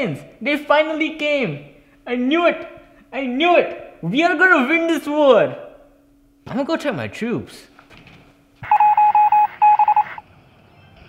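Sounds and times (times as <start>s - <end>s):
short electronic beeps: 8.6s - 10.2s.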